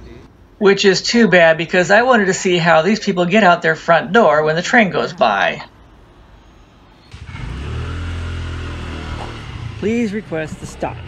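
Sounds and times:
vehicle engine running: 0:07.1 - 0:11.0.

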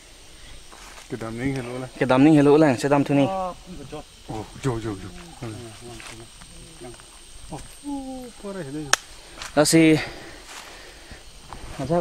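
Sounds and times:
high-pitched whine: 0:00.0 - 0:10.0
faint voices talking: 0:01.2 - 0:12.0.

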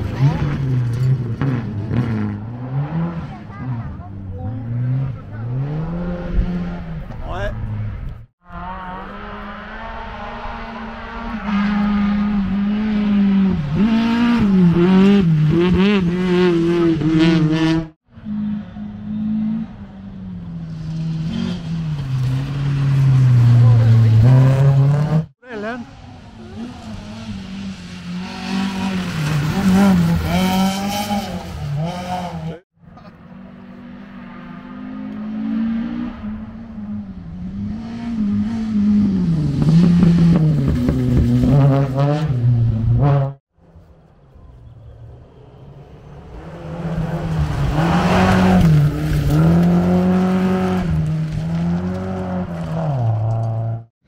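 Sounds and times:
rally car engine revving: 0:00.0 - 0:43.4, 0:46.0 - 0:53.9.

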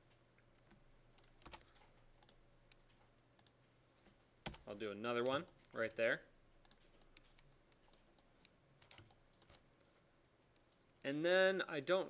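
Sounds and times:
computer keys clicking: 0:00.6 - 0:06.0, 0:06.6 - 0:10.9.

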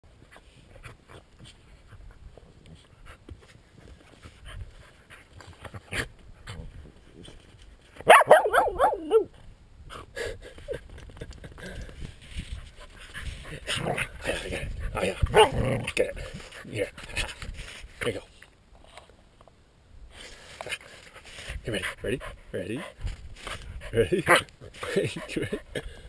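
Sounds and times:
dog vocalizing: 0:08.1 - 0:09.3.

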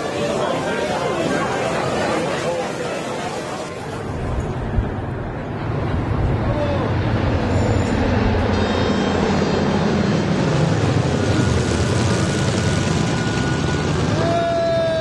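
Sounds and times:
propeller airplane droning overhead: 0:00.0 - 0:15.0.

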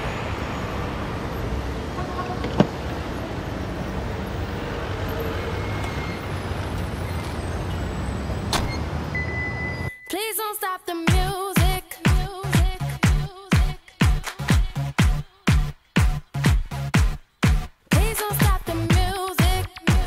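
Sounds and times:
traffic rumble: 0:00.0 - 0:09.9.

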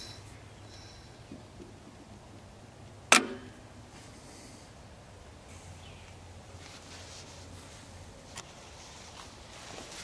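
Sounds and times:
sharp metallic snap: 0:03.1 - 0:03.6.

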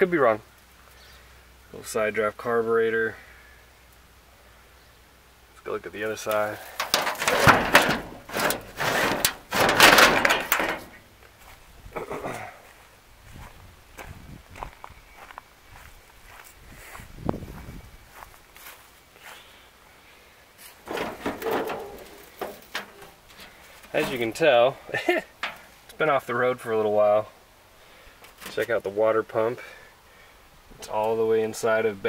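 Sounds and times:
sheet metal panel clattering: 0:06.7 - 0:11.0, 0:20.8 - 0:24.3.

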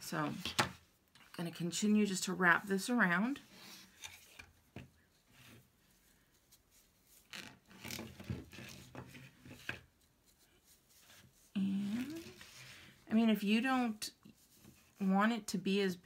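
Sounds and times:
rope rubbing and rasping: 0:03.5 - 0:15.1.

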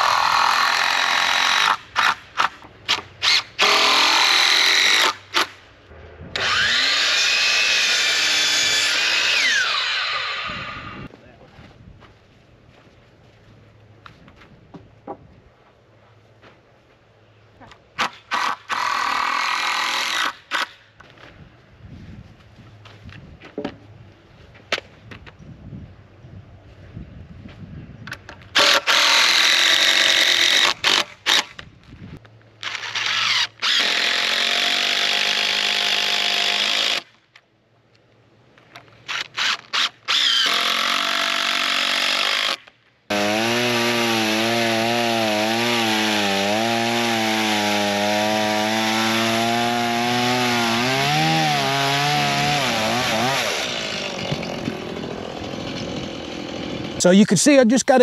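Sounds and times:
cordless drill driving screws: 0:32.6 - 0:37.0, 0:39.1 - 0:42.7.

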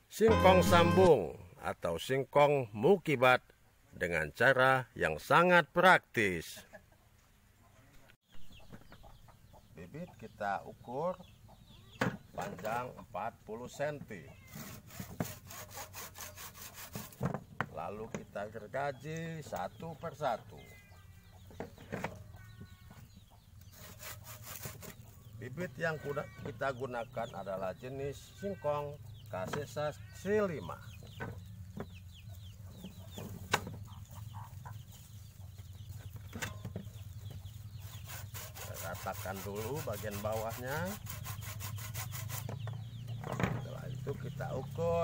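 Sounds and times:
chickens clucking: 0:06.3 - 0:14.4, 0:17.8 - 0:23.9, 0:24.8 - 0:41.0
hand saw cutting wood: 0:14.5 - 0:17.3, 0:23.6 - 0:25.1, 0:37.8 - 0:42.6.

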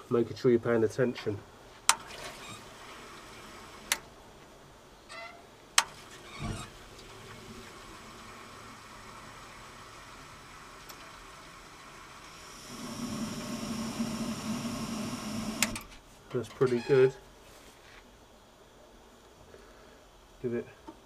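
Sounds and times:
gas flame burning with hum: 0:00.0 - 0:16.4.

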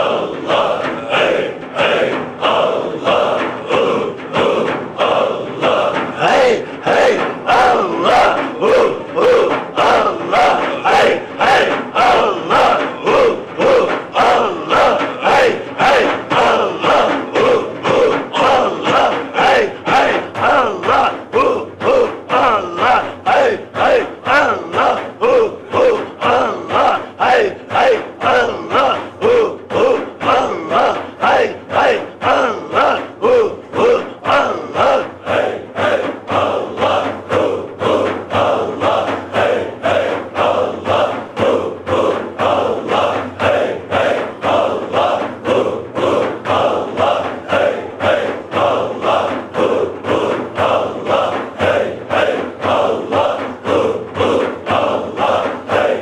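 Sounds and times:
frame drums struck: 0:00.0 - 0:56.0
men chanting in unison: 0:00.0 - 0:56.0.

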